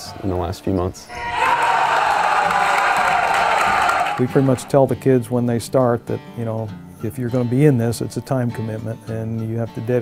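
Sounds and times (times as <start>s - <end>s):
group cheering and shouting: 1.1s - 4.7s.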